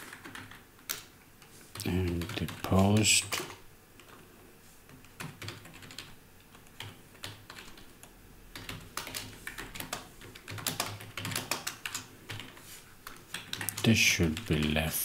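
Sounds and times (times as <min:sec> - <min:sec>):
typing on computer keyboard: 0:00.0 - 0:01.1, 0:01.7 - 0:04.2, 0:04.9 - 0:14.8.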